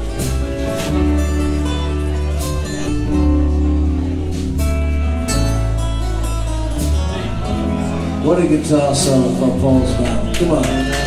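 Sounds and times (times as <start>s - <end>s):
acoustic guitar strumming: 0.0s - 11.0s
bass line: 0.0s - 11.0s.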